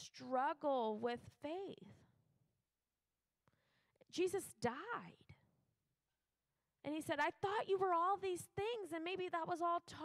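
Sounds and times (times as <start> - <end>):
woman speaking: 0.0 - 2.0, 4.1 - 5.4, 6.9 - 10.0.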